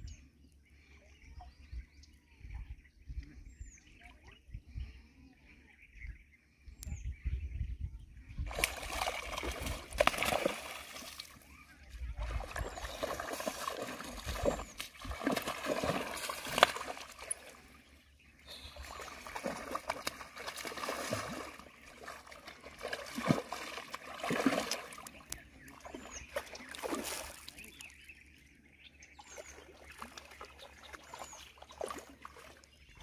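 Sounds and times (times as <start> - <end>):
fish thrashing and splashing water: 8.5 - 11.4, 12.2 - 17.7, 18.5 - 27.6, 29.6 - 32.6.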